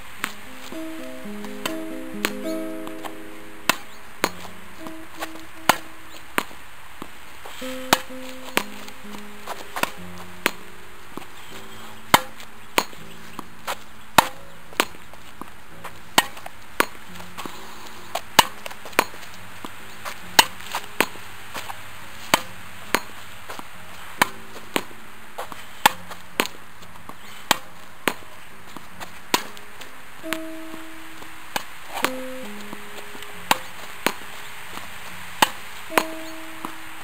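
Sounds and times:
soft background music: 0:00.0 - 0:16.1, 0:17.0 - 0:25.4, 0:27.7 - 0:37.0
tennis ball hitting racket and wall: 0:00.0 - 0:37.0.

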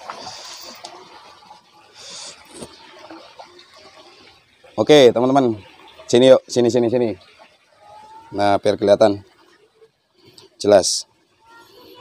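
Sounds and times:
loud water splashes: 0:00.0 - 0:09.5.

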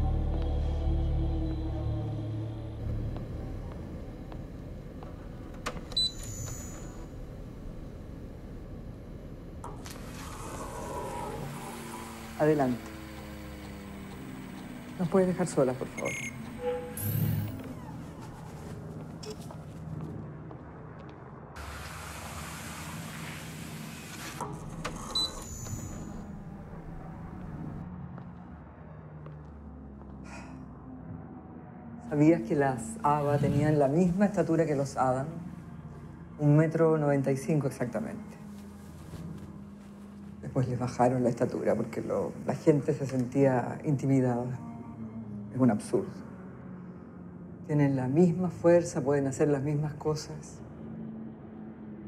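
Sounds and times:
short electronic beep: 0:16.0 - 0:17.5
sliding door hissing: 0:21.6 - 0:26.4.

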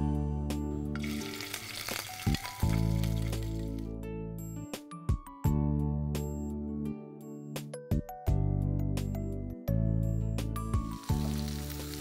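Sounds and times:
background music: 0:00.0 - 0:12.0
liver sizzling in a frying pan: 0:01.0 - 0:03.8, 0:10.8 - 0:12.0.

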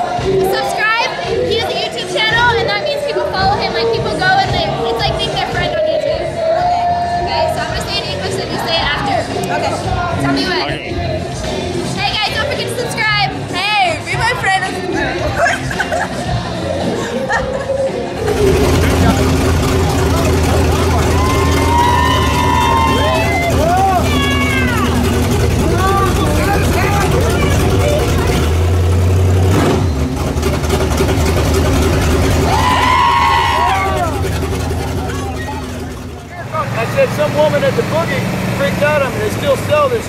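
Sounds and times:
people talking: 0:00.4 - 0:06.2, 0:07.3 - 0:11.0, 0:12.0 - 0:16.2, 0:17.0 - 0:28.6, 0:33.5 - 0:40.0
people whooping and calling out: 0:16.9 - 0:27.8, 0:32.4 - 0:36.0
vehicle engine running: 0:18.1 - 0:40.0.

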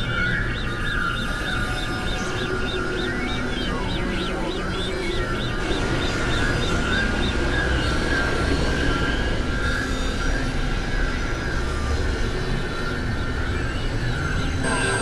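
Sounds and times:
synthesizer noise drone: 0:00.0 - 0:15.0
faint high tones: 0:14.6 - 0:15.0.

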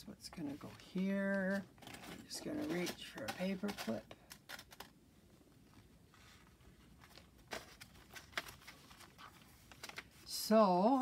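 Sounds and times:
paper and paper clip handling: 0:01.2 - 0:04.9.

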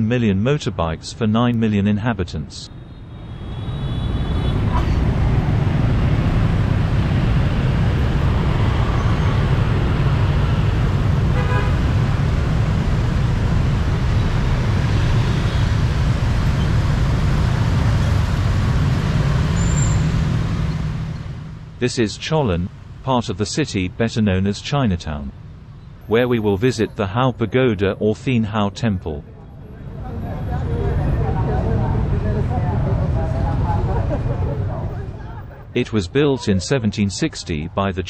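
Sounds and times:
motorbike traffic engines: 0:00.0 - 0:38.0.

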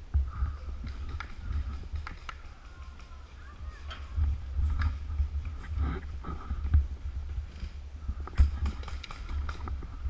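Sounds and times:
low rumble: 0:00.0 - 0:10.0
paintballs striking: 0:00.8 - 0:03.4.

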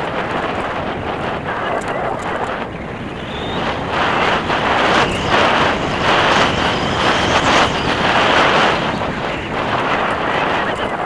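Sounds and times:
wind noise: 0:00.0 - 0:11.0.

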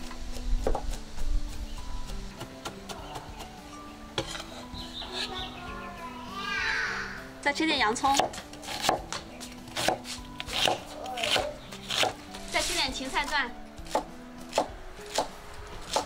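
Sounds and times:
cleaver knocking on wooden board: 0:00.6 - 0:01.0, 0:08.1 - 0:12.2.

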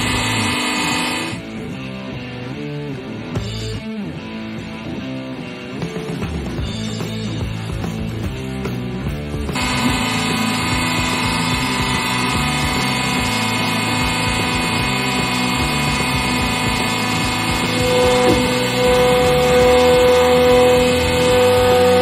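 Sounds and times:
hydraulic press pump hum: 0:00.0 - 0:01.4, 0:09.5 - 0:22.0
higher tone: 0:09.6 - 0:22.0.

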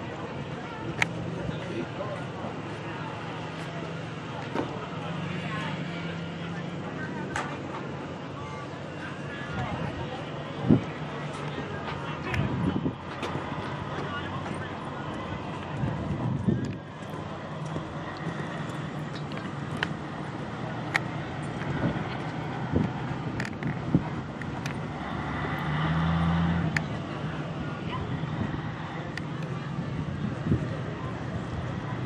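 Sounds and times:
indistinct voices: 0:00.0 - 0:32.0.

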